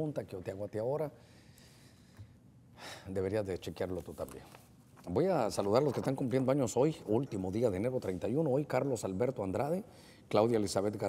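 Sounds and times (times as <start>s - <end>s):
man speaking: 3.1s - 11.0s.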